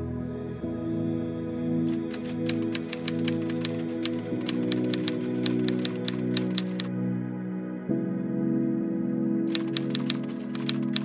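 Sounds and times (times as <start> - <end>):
typewriter key clicks: 1.9 - 6.9, 9.5 - 11.0.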